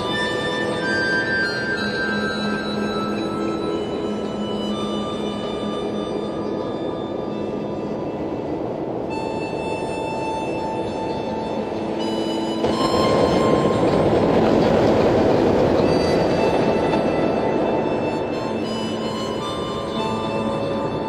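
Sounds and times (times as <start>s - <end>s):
harmonica playing chords: 0.0s - 21.0s.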